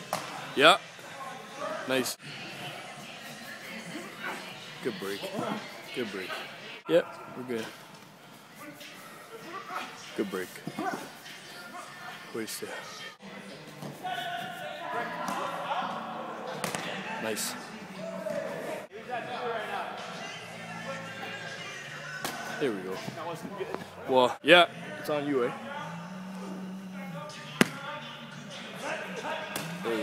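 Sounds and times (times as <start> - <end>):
background music: 0.0 - 30.0
indistinct voices: 8.5 - 30.0.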